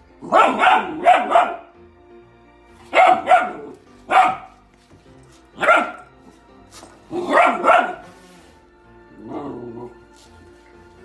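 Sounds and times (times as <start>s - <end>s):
puppy barking: 0.2s - 1.8s, 2.8s - 4.6s, 5.6s - 6.1s, 7.1s - 8.2s.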